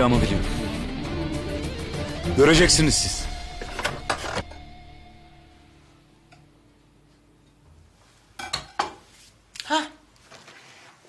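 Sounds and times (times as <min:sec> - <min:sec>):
sustained music chord: 0:00.0 - 0:06.7.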